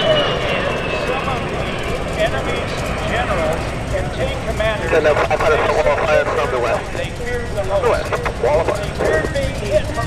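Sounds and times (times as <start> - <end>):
jet engines passing overhead: 0.0 - 10.0.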